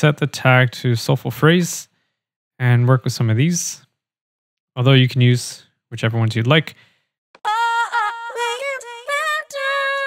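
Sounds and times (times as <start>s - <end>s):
synthesized female singing voice: 7.4s - 10.0s.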